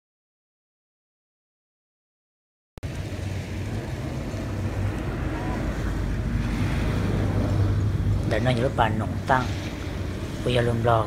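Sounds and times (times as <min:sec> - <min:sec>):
boat motor humming: 0:02.8 - 0:11.0
water noise: 0:02.8 - 0:11.0
wind buffeting microphone: 0:02.8 - 0:11.0.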